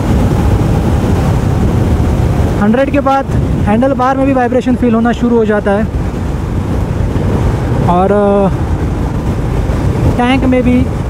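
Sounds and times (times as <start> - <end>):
wind rush on microphone: 0.0 - 11.0.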